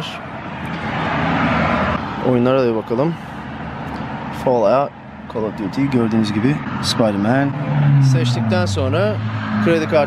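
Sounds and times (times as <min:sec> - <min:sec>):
car driving past: 0:00.6 - 0:02.2, 0:06.6 - 0:10.0.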